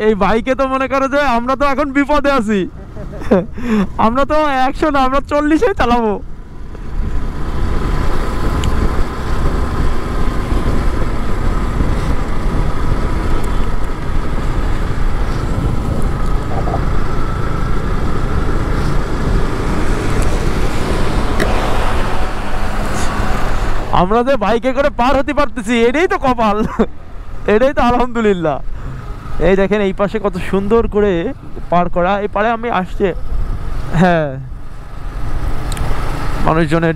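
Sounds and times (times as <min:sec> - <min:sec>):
motorcycle road noise: 0:00.0 - 0:36.9
wind buffeting microphone: 0:06.9 - 0:23.9.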